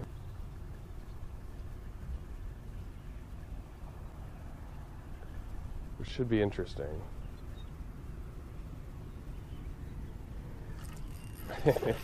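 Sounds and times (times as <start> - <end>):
faint outdoor low rumble: 0.0 - 12.0.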